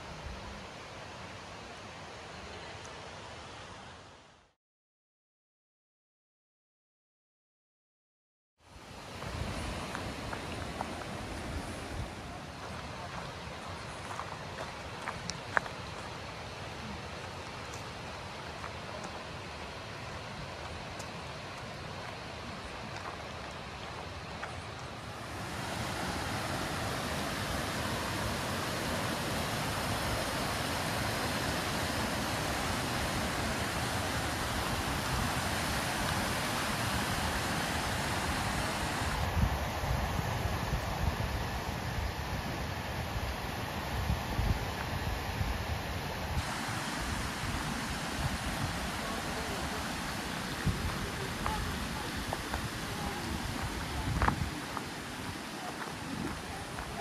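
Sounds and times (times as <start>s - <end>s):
water running over rocks: 8.7s - 57.0s.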